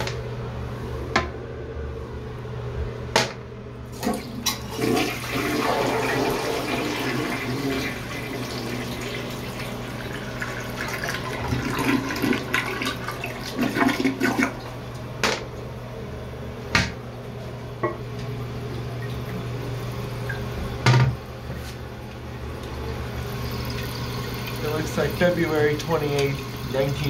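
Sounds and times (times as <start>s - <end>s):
toilet bowl gurgling: 3.9s - 14.9s, 18.4s - 21.4s, 22.1s - 27.0s
toilet water rushing: 3.9s - 14.9s, 22.7s - 27.0s.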